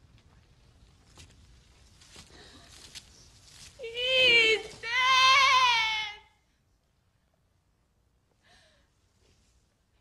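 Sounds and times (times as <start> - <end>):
faint rustling and clicks: 0.0 - 4.9
woman wailing: 3.8 - 6.2.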